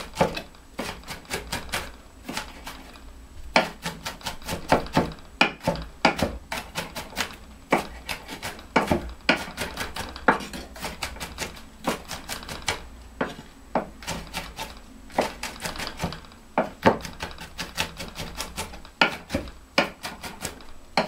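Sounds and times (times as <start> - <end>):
knife chopping on wooden board: 0.0 - 21.0.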